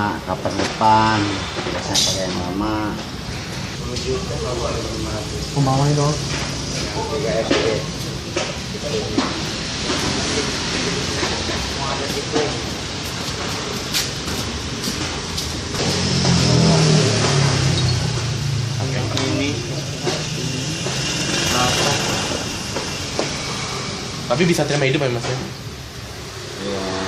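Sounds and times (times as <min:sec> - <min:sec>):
motor vehicle engine running: 0:12.4 - 0:24.3
indistinct voices: 0:15.7 - 0:25.5, 0:26.4 - 0:27.0.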